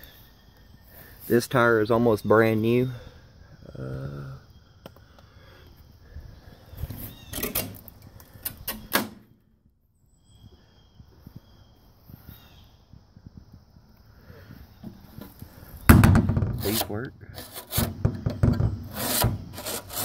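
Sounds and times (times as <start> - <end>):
knocks in metal trailer: 15.9 - 16.7
metal vent cover scraping: 16.2 - 20.0.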